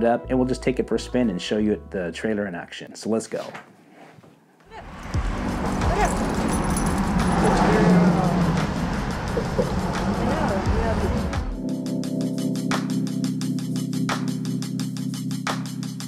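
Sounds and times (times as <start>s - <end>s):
heavy low rumble: 4.8s - 11.6s
passing road traffic: 4.8s - 11.6s
background music with a beat: 5.0s - 7.7s, 8.3s - 16.0s.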